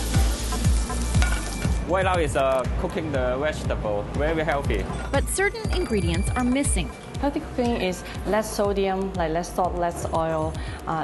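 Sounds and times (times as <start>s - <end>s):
shrimp sizzling in frying pan: 0.0s - 2.6s
background music with steady beat: 0.0s - 11.0s.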